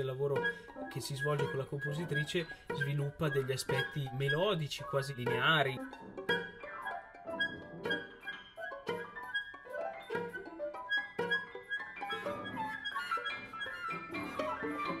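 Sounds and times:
chamber ensemble music: 0.0 - 15.0.

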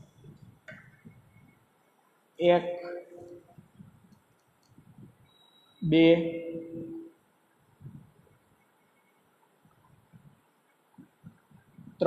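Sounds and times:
faint clicks and taps: 0.0 - 1.6.

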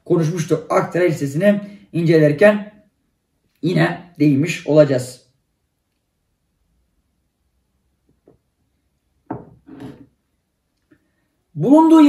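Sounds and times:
mug knocking on wooden table: 9.3 - 10.0
mug scraping on table: 9.3 - 10.2.

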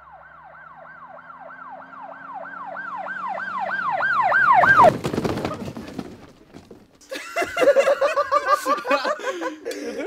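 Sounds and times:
person laughing: 7.0 - 10.0.

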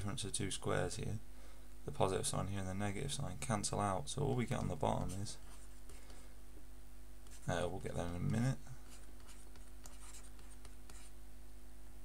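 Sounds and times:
faint steady hum: 0.0 - 12.0
stylus scratching on tablet: 4.3 - 6.2, 7.2 - 11.2.

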